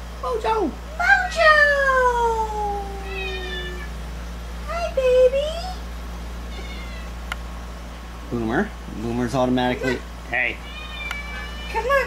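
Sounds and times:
cat meowing: 3.0 - 4.0, 6.5 - 7.2, 9.8 - 12.0.

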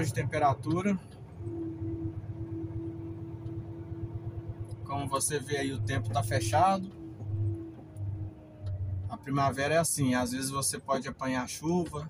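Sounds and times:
diesel truck engine from cab: 0.0 - 12.0.

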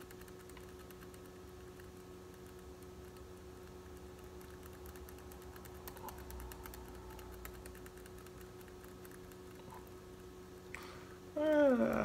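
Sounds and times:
rapid light clicking: 0.0 - 10.4
low electrical hum: 0.0 - 12.0.

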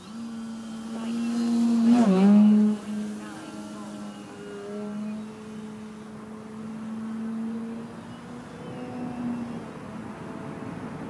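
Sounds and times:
model plane motor droning: 0.0 - 11.0.

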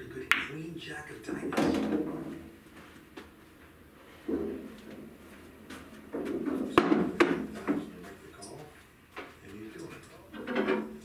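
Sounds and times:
pool balls clacking: 1.2 - 2.6, 4.2 - 8.6, 9.2 - 11.0
pool balls rolling in wooden return: 1.4 - 2.6, 4.1 - 8.0, 9.9 - 11.0.

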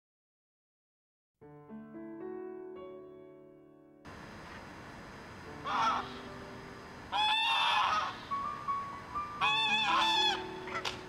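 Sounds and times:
geese honking: 5.6 - 6.4, 7.0 - 11.0.

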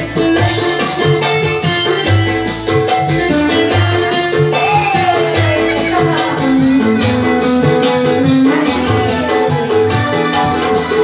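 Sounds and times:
electronic keyboard music: 0.0 - 11.0.

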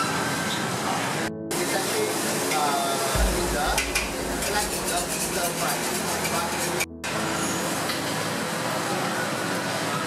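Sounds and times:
low rumble: 3.2 - 7.1.

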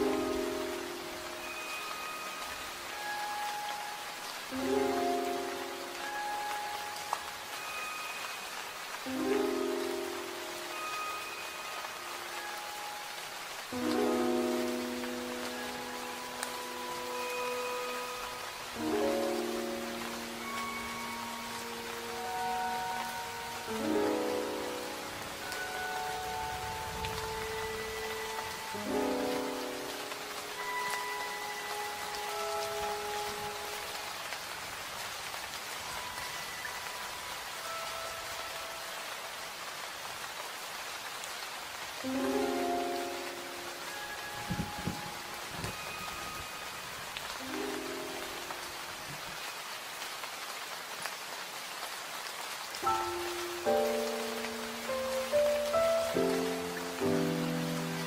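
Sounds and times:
slow relaxation music melody: 0.0 - 58.0
steady rain falling: 0.0 - 58.0.

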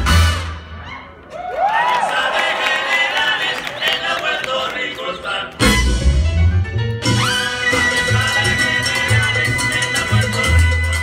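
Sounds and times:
latin dance music: 0.0 - 0.8, 2.1 - 11.0
audience cheering and whooping: 0.8 - 4.0.

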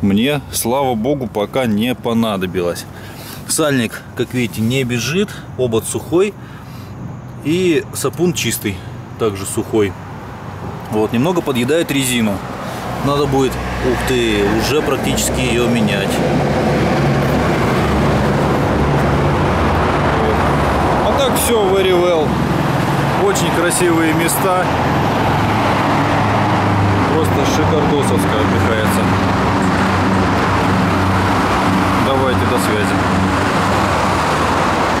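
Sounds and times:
road traffic rumble: 0.0 - 35.0.

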